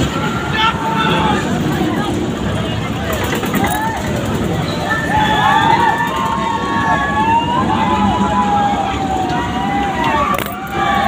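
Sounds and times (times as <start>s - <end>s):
fairground din: 0.0s - 11.0s.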